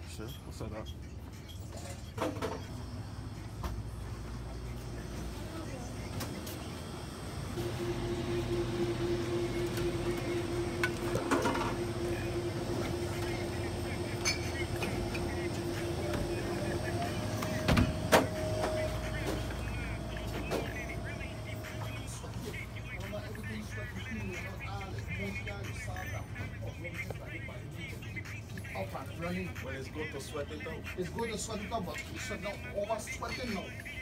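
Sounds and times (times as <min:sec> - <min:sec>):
low steady hum: 0:03.0 - 0:26.4
background voices: 0:03.4 - 0:34.0
held tone: 0:07.6 - 0:17.4.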